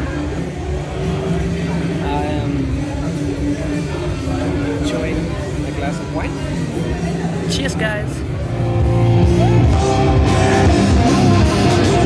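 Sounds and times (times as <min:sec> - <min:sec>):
guitar-led rock music: 0:00.0 - 0:12.0.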